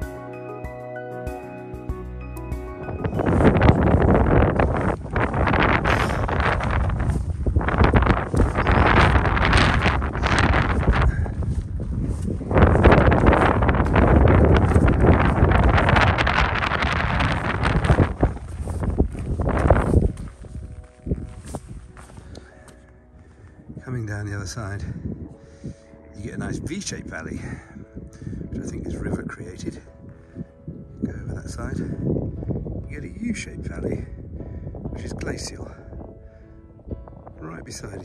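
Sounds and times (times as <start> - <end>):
strong wind buffeting microphone: 2.6 - 38.0.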